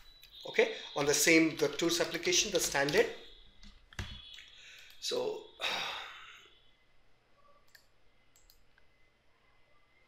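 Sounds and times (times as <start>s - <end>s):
computer mouse clicks: 7.6s - 8.9s.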